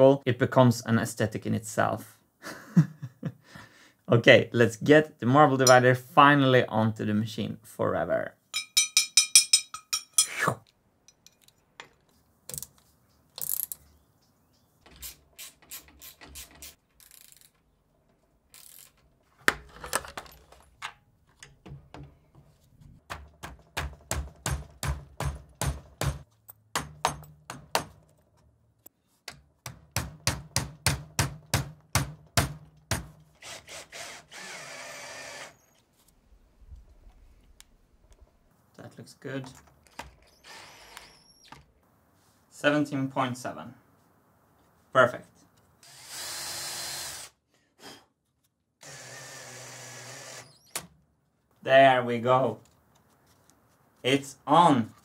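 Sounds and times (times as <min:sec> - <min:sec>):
cordless drill driving screws: 0:33.4 - 0:35.8, 0:40.2 - 0:41.5, 0:45.8 - 0:47.4, 0:48.8 - 0:50.8.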